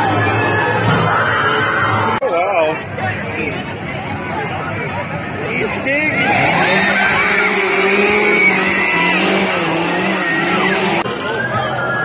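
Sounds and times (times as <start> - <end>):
chainsaws revving: 6.1 - 11.0.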